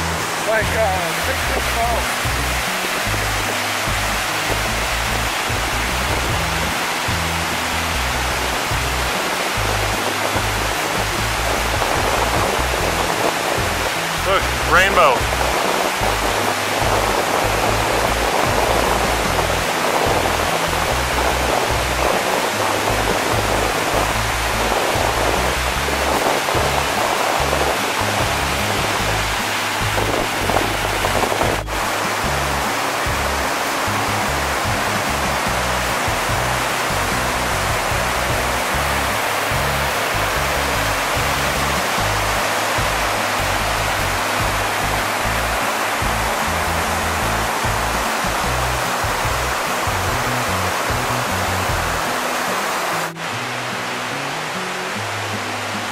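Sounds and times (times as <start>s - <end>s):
rushing creek water: 0.0s - 55.9s
waterfall roar: 0.0s - 55.9s.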